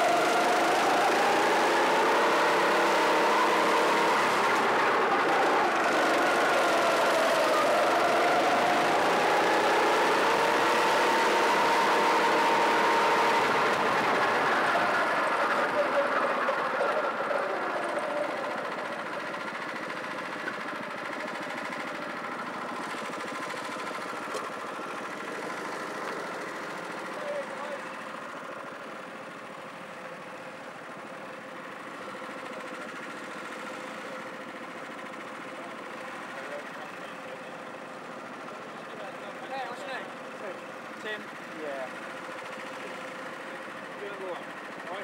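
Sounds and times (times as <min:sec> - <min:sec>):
kart engine idling: 0:00.0 - 0:45.0.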